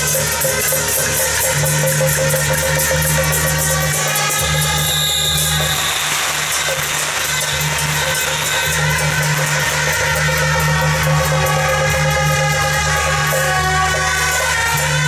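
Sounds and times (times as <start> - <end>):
cymbals and drums beat: 0.0 - 15.0
marching band playing: 0.0 - 15.0.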